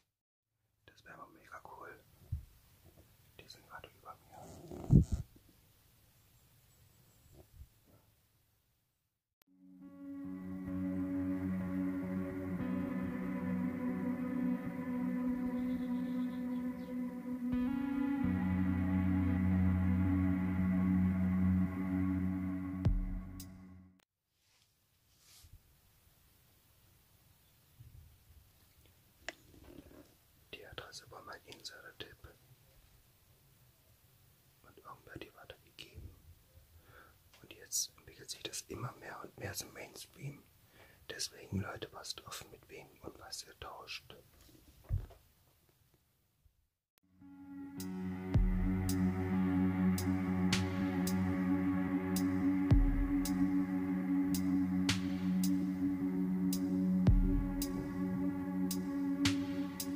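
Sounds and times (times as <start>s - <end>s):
person whispering: 0.9s - 2.1s, 3.4s - 4.9s, 30.5s - 32.4s, 34.6s - 36.1s, 37.4s - 40.5s, 41.1s - 44.2s.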